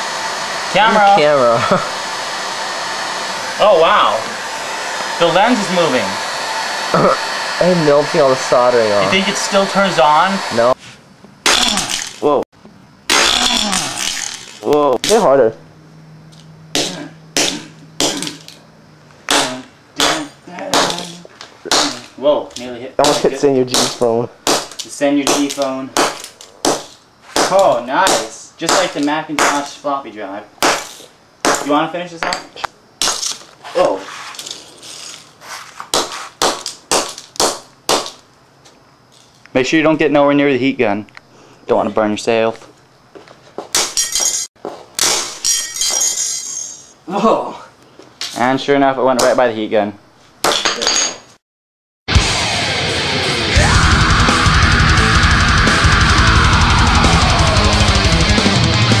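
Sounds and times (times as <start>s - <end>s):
clatter of breaking parts: 13.1s - 14.6s, 43.8s - 46.6s
hammer smashing phone on concrete: 45.0s - 46.2s.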